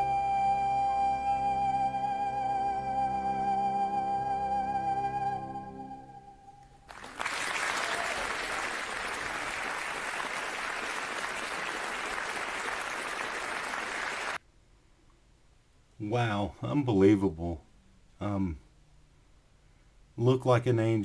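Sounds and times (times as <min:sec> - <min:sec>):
woman singing with vibrato: 0:00.0 - 0:06.6
audience applauding: 0:06.9 - 0:14.4.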